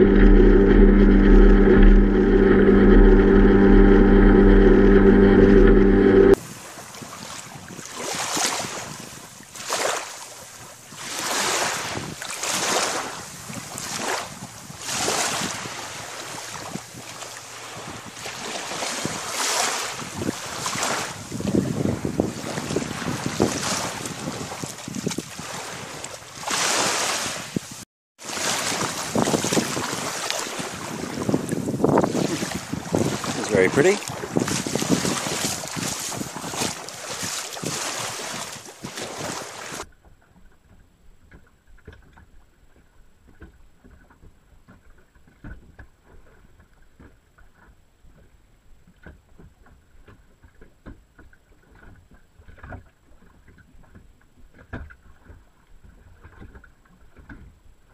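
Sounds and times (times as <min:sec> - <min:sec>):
small waves lapping on shore: 0:06.4 - 0:40.4
crackly water splashing: 0:06.5 - 0:57.9
wind buffeting microphone: 0:19.9 - 0:26.2, 0:28.6 - 0:39.8.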